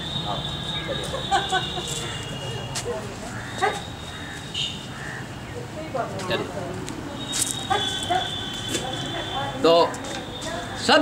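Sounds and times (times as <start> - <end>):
dog yipping: 3.5 - 3.9, 7.6 - 8.3.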